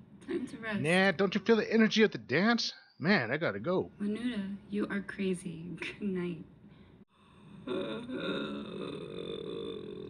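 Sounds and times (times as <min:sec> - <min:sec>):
person making low creaky vocal sound: 0:07.6 - 0:10.0.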